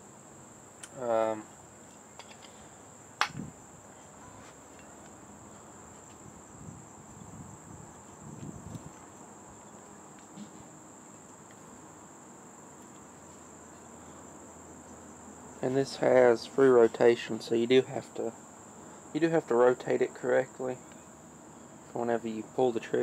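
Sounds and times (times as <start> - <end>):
crickets chirring: 0.0 - 23.0
sharp click: 0.8 - 1.0, 3.2 - 3.4.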